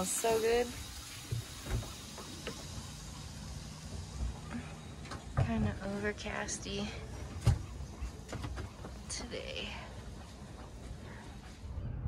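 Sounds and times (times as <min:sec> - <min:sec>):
steady low hum: 0:00.0 - 0:12.0
water: 0:00.0 - 0:12.0
wind: 0:00.0 - 0:12.0.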